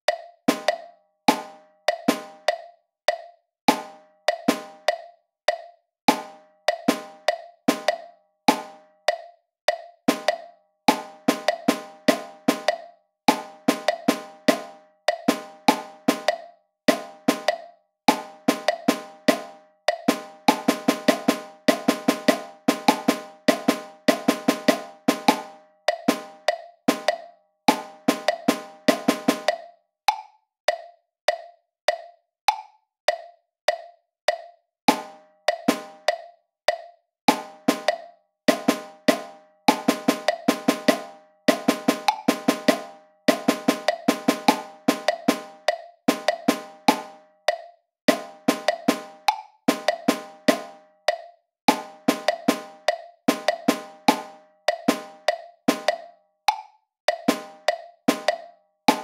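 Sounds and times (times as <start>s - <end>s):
metronome click: 0.1s - 24.0s, 24.6s - 41.2s, 42.0s - 59.0s
drum triplet strokes: 0.5s - 2.5s, 3.7s - 4.9s, 6.1s - 8.8s, 10.1s - 29.6s, 34.9s - 36.1s, 37.3s - 47.2s, 48.1s - 50.8s, 51.7s - 56.0s, 57.2s - 59.0s.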